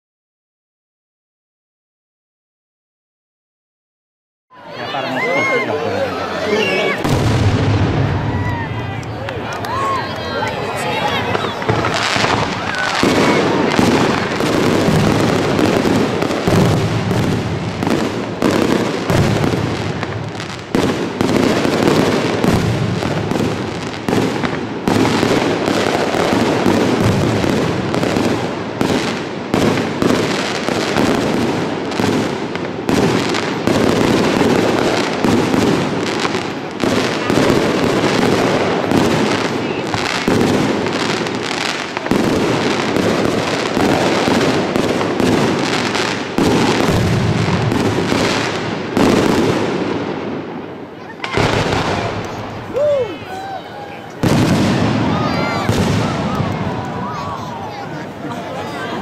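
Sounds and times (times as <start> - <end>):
fireworks bangs and crackles: 5.4 - 59.0.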